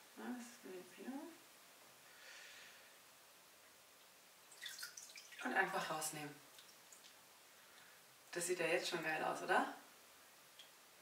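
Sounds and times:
water splash and trickle: 4.0 - 7.9
water sloshing: 4.5 - 5.9.

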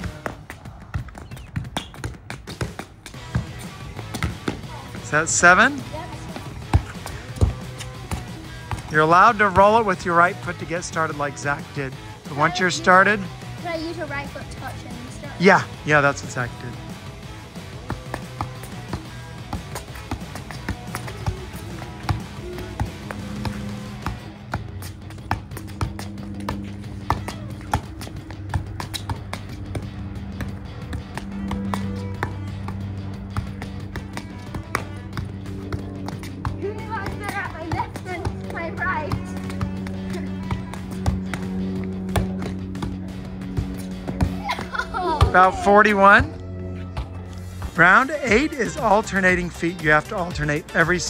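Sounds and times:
foot tapping soccer ball: 0.0 - 11.4, 17.4 - 50.8
background music: 2.3 - 51.0.

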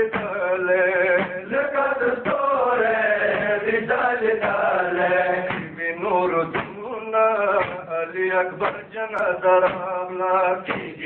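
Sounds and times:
man chanting a lament: 0.0 - 11.0.

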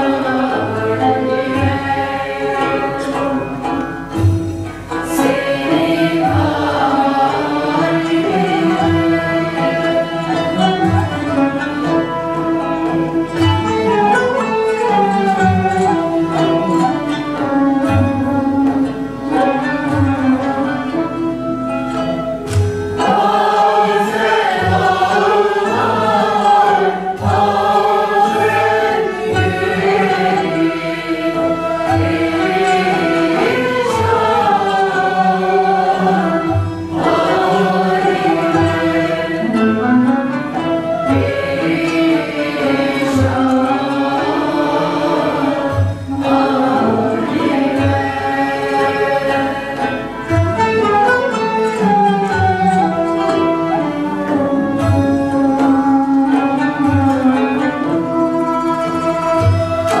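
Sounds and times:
bowed strings: 0.0 - 60.0
instrumental ensemble: 0.0 - 60.0
mixed choir singing: 0.0 - 60.0
plucked oud and kanun: 0.0 - 60.0.

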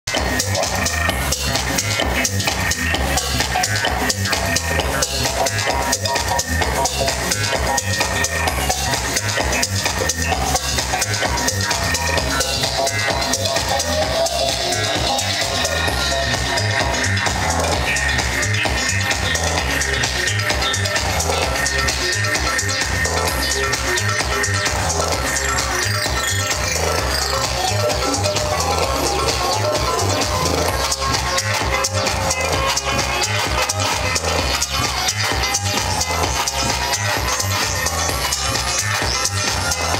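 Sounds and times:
loud electronic dance music: 0.1 - 39.9.

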